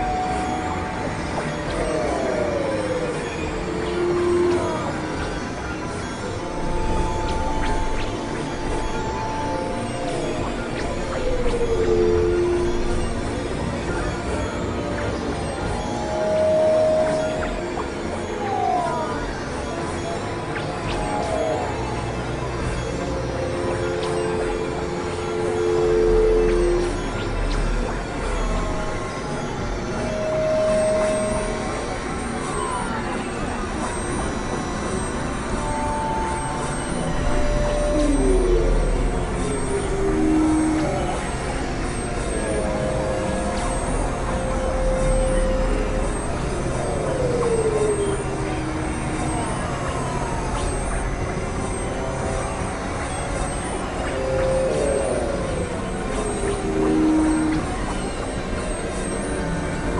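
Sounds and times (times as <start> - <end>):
hissing rumbling synthesizer noise: 0.0 - 59.9.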